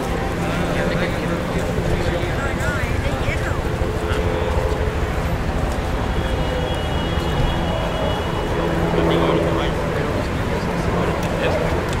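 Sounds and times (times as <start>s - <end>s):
passers-by talking: 0.0s - 12.0s
traffic rumble: 0.0s - 12.0s.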